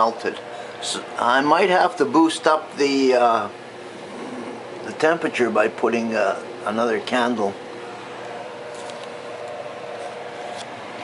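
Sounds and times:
electric fan humming: 0:00.0 - 0:11.0.

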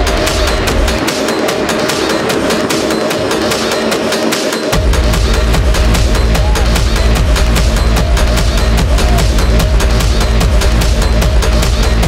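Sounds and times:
bass: 0:00.0 - 0:12.0
hi-hats ticking: 0:00.0 - 0:12.0
techno music: 0:00.0 - 0:12.0.

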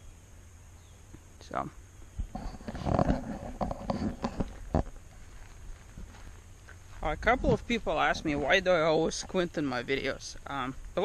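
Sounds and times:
rustling on microphone: 0:02.0 - 0:11.0.

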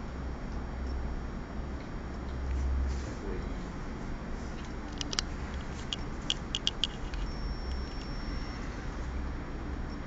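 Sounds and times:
low steady hum: 0:00.0 - 0:10.0
faint high tone: 0:07.3 - 0:09.0.

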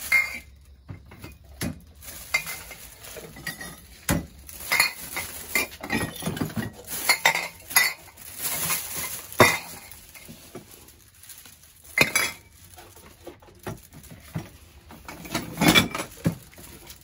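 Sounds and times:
glass bottles clinking together: 0:00.0 - 0:10.8, 0:11.6 - 0:17.0
plastic bag rustling: 0:00.0 - 0:17.0.

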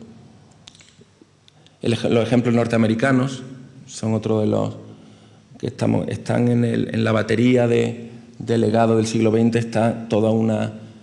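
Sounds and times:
man speaking: 0:01.8 - 0:05.0, 0:05.6 - 0:10.9.

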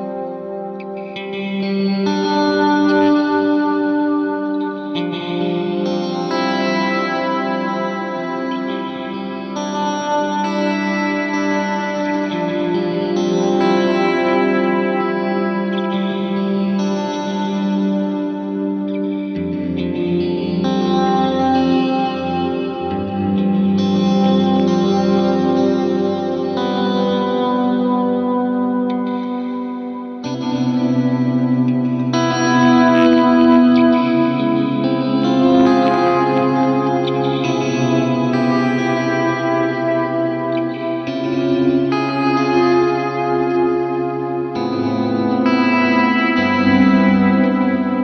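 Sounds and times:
electric guitar chords with reverb: 0:00.0 - 0:48.0.

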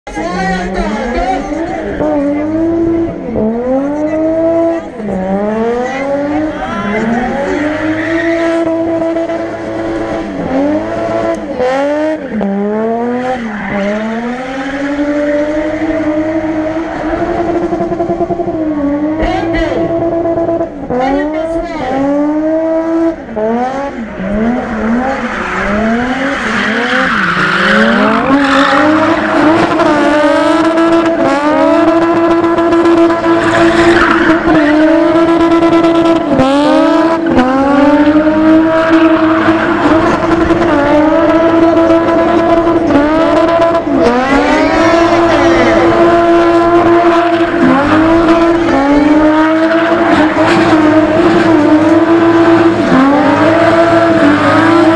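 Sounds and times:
car engine revving: 0:00.1 - 0:54.9.

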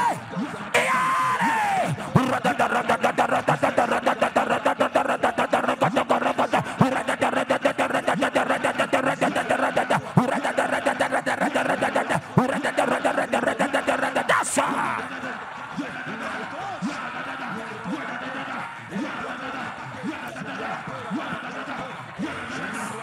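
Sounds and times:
man speaking rapidly over pa: 0:00.0 - 0:15.3.

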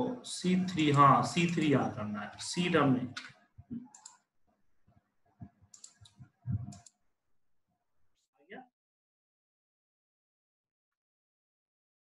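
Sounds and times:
mouse and keyboard clicks: 0:03.1 - 0:04.2, 0:05.7 - 0:07.0.

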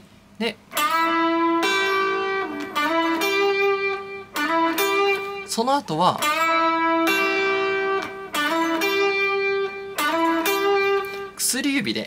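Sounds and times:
electric guitar lead with string bends: 0:00.6 - 0:11.8.

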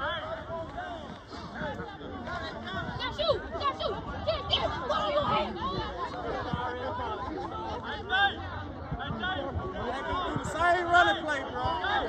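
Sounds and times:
people calling out: 0:00.0 - 0:08.5
crowd chatter: 0:00.0 - 0:12.0.

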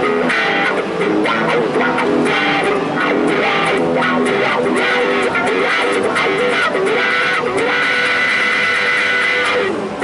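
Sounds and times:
electric guitar through amplifier: 0:00.0 - 0:10.0.

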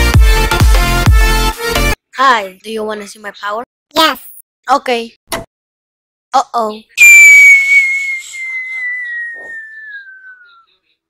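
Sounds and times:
cartoon falling whistle: 0:07.0 - 0:10.8.

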